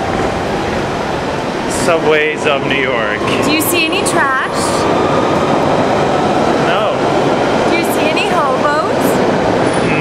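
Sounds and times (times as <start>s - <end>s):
underground train rumbling: 0.0s - 10.0s
voices: 0.9s - 10.0s.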